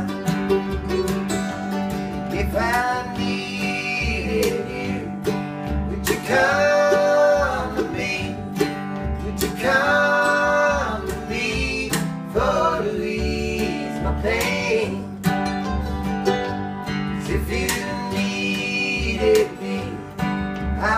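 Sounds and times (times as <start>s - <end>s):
mandolin: 0.0s - 20.9s
plucked upright bass: 0.0s - 20.9s
strummed acoustic guitars: 0.0s - 20.9s
voices singing held notes: 2.3s - 5.3s, 5.9s - 8.6s, 9.2s - 15.2s, 17.2s - 20.9s.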